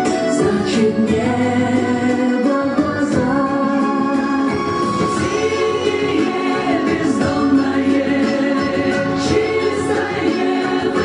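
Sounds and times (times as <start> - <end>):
choir singing over instrumental backing: 0.0 - 11.0.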